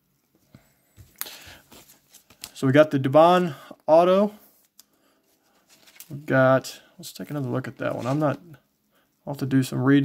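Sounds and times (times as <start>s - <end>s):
plastic sleeve rustling: 1.0s - 2.8s, 4.5s - 8.6s.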